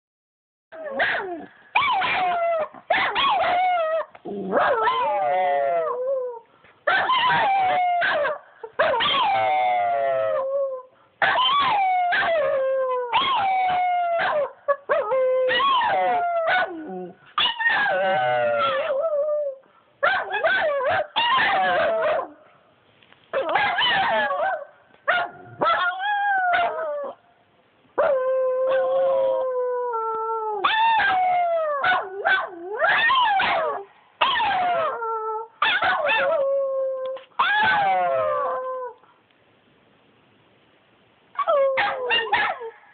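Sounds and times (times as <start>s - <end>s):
dogs howling: 7.0s - 10.8s, 11.4s - 19.5s, 20.3s - 22.4s, 28.0s - 39.0s.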